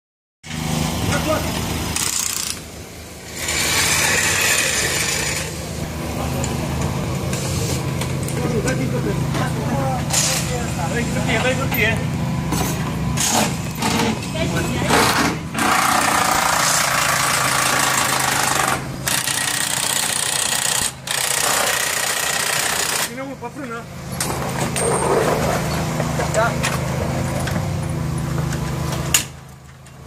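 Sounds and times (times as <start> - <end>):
low mechanical hum: 0.5 - 30.0.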